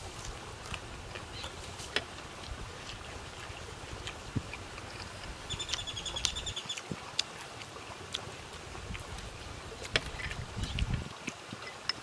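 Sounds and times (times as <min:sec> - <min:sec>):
chewing and lip-smacking: 0:00.0 - 0:12.0
wind rumble on microphone: 0:02.3 - 0:07.2, 0:08.5 - 0:12.0.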